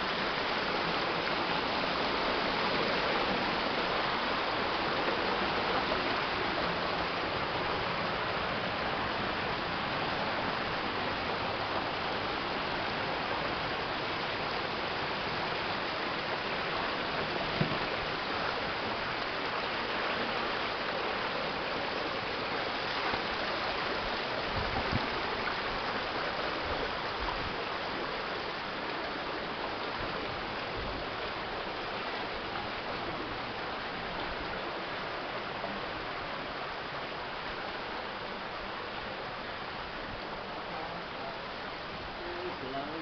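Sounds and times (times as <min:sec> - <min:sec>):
stream rushing over rocks: 0:00.0 - 0:43.0
low knocks: 0:17.5 - 0:17.9
brief thump: 0:17.6 - 0:17.8.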